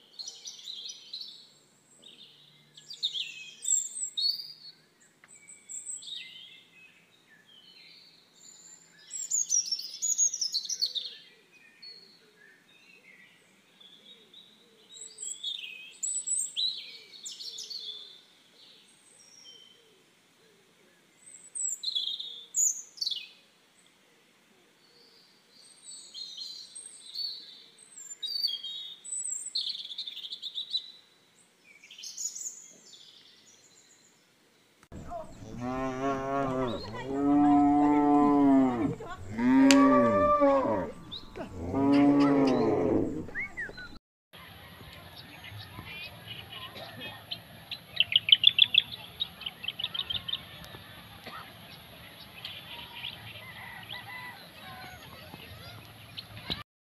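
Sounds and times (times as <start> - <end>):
small birds chirping: 24.7 - 44.0, 44.7 - 56.6
cows mooing: 35.0 - 43.6.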